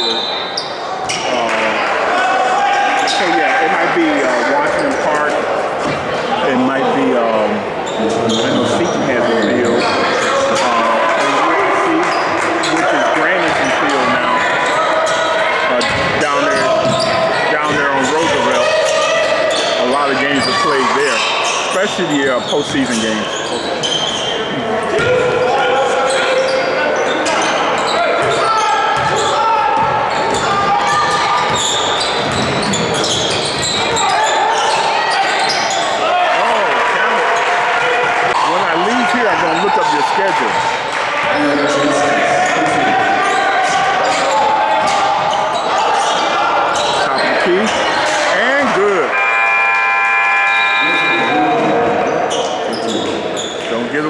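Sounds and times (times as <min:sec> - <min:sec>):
voices echoing: 0:00.0 - 0:54.0
basketball bouncing on hardwood: 0:29.0 - 0:29.2, 0:32.2 - 0:33.6
scoreboard horn: 0:49.0 - 0:51.8.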